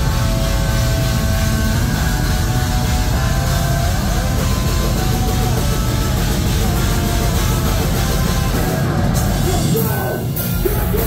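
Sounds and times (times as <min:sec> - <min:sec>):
bass and drums rumble: 0:00.0 - 0:11.0
distorted guitars: 0:00.0 - 0:11.0.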